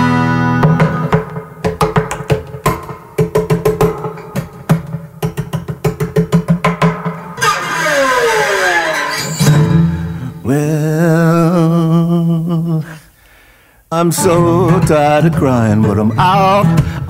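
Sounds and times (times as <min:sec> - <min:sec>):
acoustic guitar playing: 0:00.0 - 0:11.6, 0:14.0 - 0:17.0.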